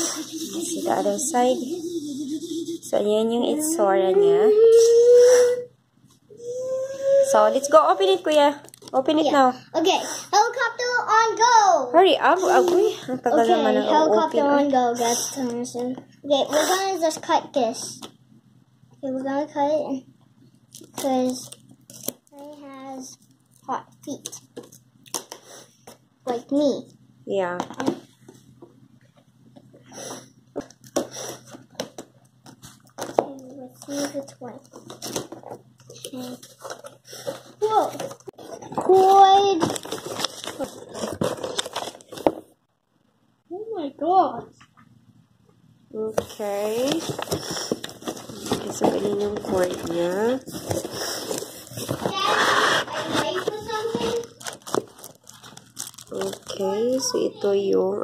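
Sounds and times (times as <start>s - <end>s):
cardboard rubbing: 46.7s - 55.2s
plastic bag crinkling: 53.2s - 57.2s.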